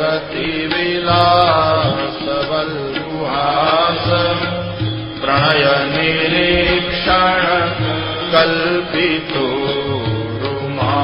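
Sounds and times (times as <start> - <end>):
steady low drone: 3.0 - 10.3
man chanting hymn verses: 5.2 - 11.0.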